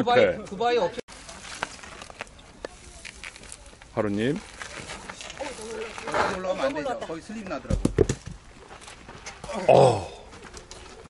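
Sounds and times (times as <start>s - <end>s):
bike knocking against rock: 7.6s - 8.4s.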